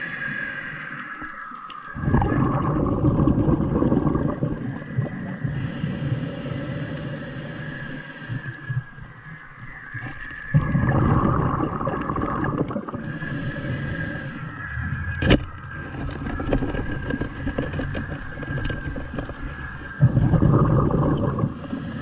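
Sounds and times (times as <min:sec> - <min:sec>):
bubbling surge of water underwater: 0:01.9 - 0:05.6, 0:10.0 - 0:13.2, 0:16.4 - 0:21.6.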